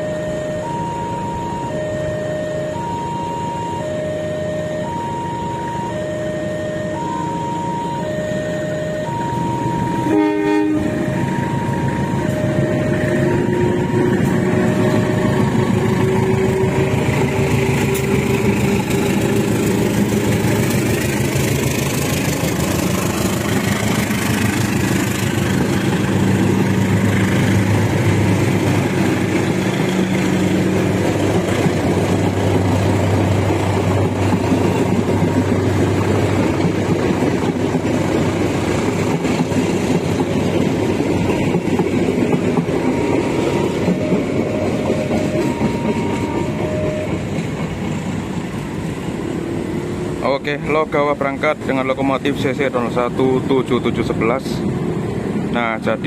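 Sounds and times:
two-tone level crossing alarm: 0:00.0 - 0:19.3, 0:41.9 - 0:47.5
diesel locomotive engine: 0:00.0 - 0:56.0
train horn blast: 0:08.2 - 0:18.4
wheels on rails: 0:10.8 - 0:55.4.

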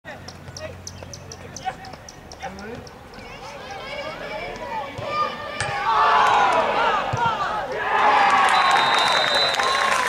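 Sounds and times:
voices of players and spectators: 0:00.1 - 0:10.0
high chirping: 0:00.8 - 0:03.4.

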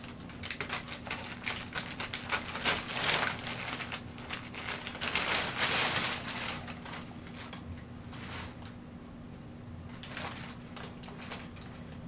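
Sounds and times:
packing paper crinkling: 0:00.0 - 0:08.7, 0:09.9 - 0:12.0.

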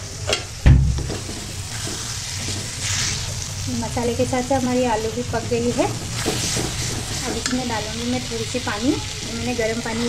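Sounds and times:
food sizzling in a pan: 0:00.0 - 0:10.0
loud heavy knock: 0:00.6 - 0:01.2
spatula stirring: 0:01.2 - 0:03.5, 0:04.9 - 0:08.7.

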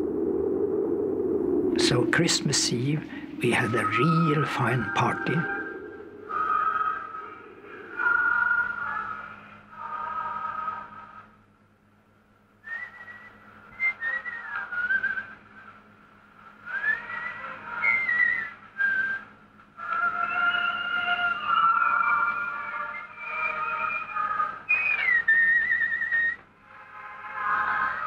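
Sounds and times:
whistled melody: 0:01.8 - 0:10.9, 0:12.6 - 0:15.6, 0:16.6 - 0:28.0.

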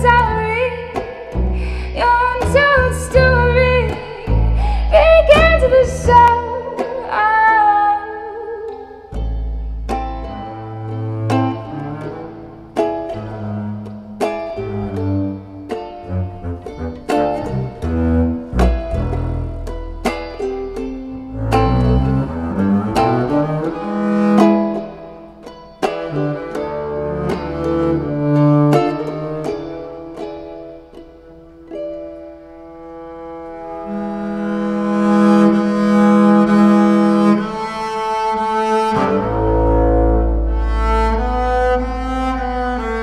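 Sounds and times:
acoustic guitar picking: 0:00.0 - 0:43.0
bowed double bass: 0:00.0 - 0:43.0.

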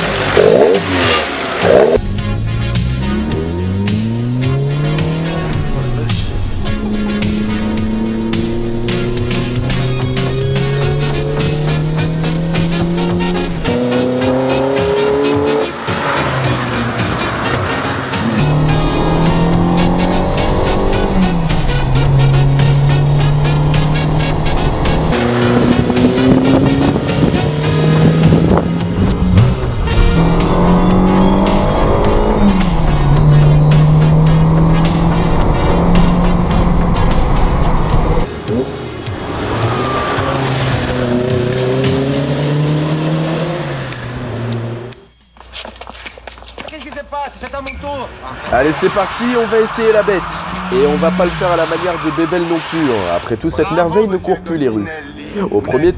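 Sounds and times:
car engine revving through gears: 0:00.0 - 0:45.0, 0:48.9 - 0:53.2
music: 0:00.0 - 0:46.4.

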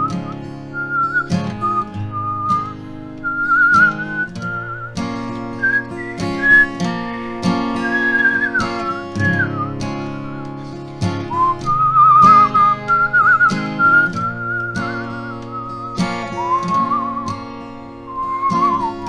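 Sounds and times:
acoustic guitar strumming: 0:00.0 - 0:19.0
man whistling a melody: 0:00.0 - 0:19.0.

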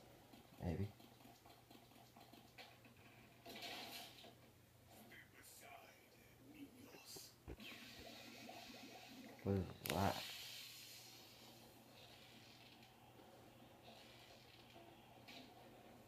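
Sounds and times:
faint television sound: 0:00.3 - 0:16.0.

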